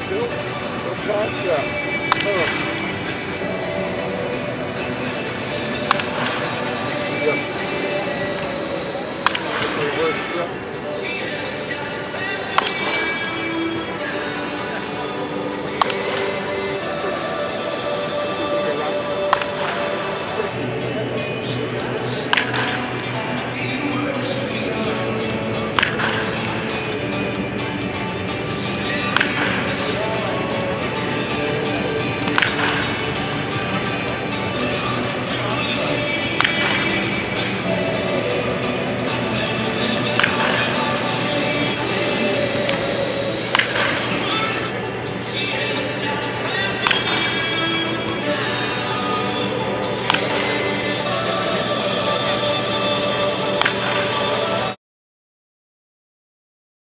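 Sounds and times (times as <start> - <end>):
background music: 0.0 - 54.8
baseball bat cracking ball: 2.1 - 2.6, 5.8 - 7.3, 9.2 - 10.0, 12.5 - 13.2, 15.7 - 16.4, 19.3 - 20.0, 22.3 - 23.0, 25.7 - 26.4, 29.0 - 29.7, 32.2 - 33.1, 36.3 - 37.0, 40.1 - 42.0, 42.6 - 44.7, 46.5 - 47.4, 49.9 - 50.8, 53.6 - 54.6.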